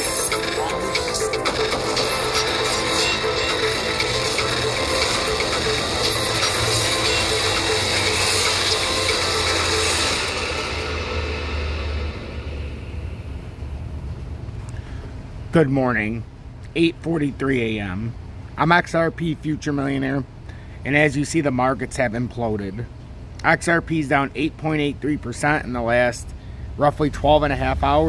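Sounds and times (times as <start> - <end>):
intro music: 0.0 - 14.4
low rumble: 5.6 - 14.7.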